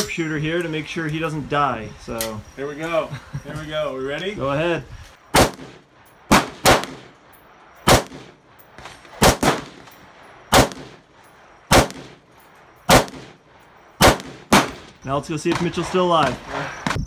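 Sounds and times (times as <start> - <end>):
gunshot echo: 5.3 - 7.2, 7.9 - 8.4, 9.2 - 9.9, 10.5 - 11.0, 11.7 - 12.2, 12.9 - 13.4, 14.0 - 15.7
rifle shots: 5.3 - 7.2, 7.8 - 11.1, 11.7 - 12.3, 12.9 - 13.4, 14.0 - 15.9.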